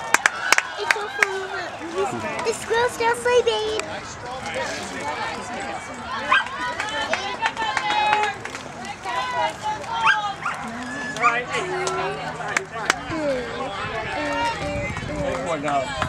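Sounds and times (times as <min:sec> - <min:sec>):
people calling out: 0:04.5 - 0:14.9.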